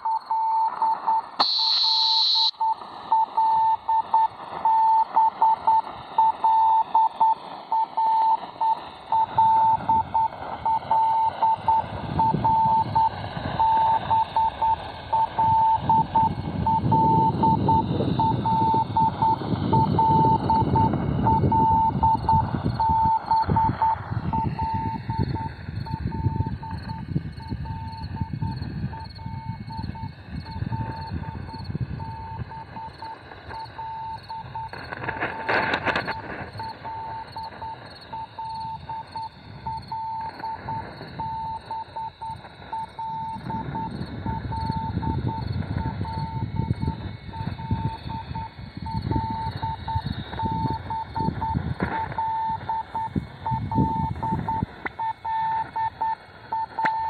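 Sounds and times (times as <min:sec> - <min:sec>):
high beep: 0:00.0 - 0:51.6, 0:52.2 - 0:57.0
morse code tone: 0:00.0 - 0:57.0
radio static hiss: 0:00.0 - 0:57.0.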